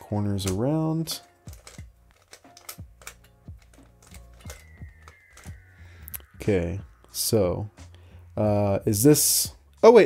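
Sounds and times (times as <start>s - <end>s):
plastic puzzle clicking as turned: 0.4s - 5.6s.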